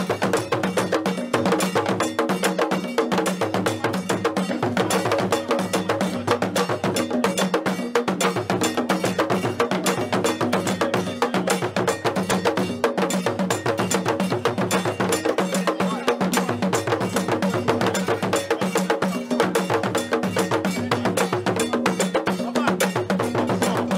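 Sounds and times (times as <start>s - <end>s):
drum ensemble playing fast rhythm: 0.0s - 23.9s.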